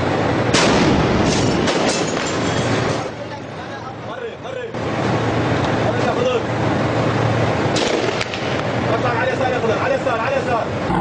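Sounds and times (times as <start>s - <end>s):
men talking: 3.2s - 4.8s, 5.7s - 6.5s, 8.8s - 11.0s.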